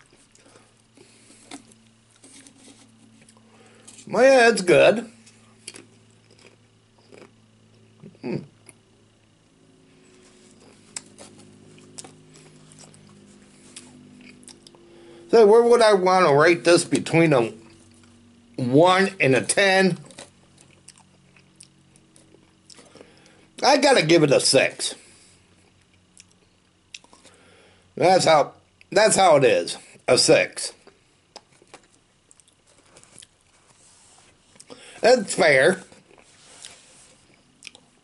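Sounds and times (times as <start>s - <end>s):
chewing potato crisp: 0.0s - 9.2s, 10.1s - 14.9s, 20.0s - 23.4s, 25.5s - 27.4s, 30.8s - 38.0s
low hum: 0.0s - 28.0s.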